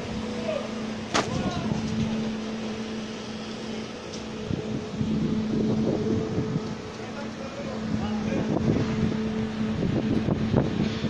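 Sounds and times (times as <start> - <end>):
construction machinery humming: 0.0 - 11.0.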